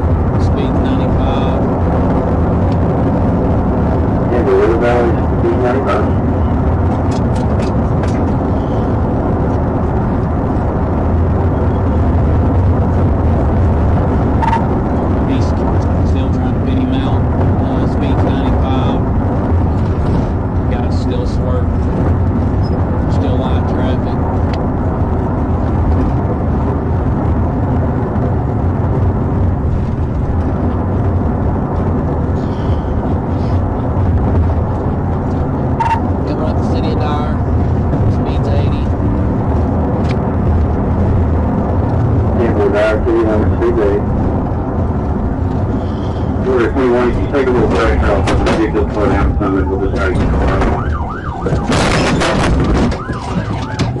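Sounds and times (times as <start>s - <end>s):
car engine and road noise in cabin: 0.0s - 54.0s.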